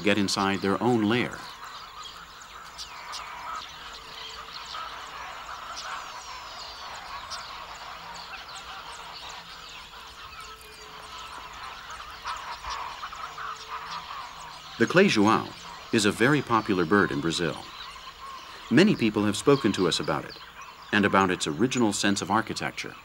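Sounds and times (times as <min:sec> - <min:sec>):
birds chirping and calling: 0:00.0 - 0:23.0.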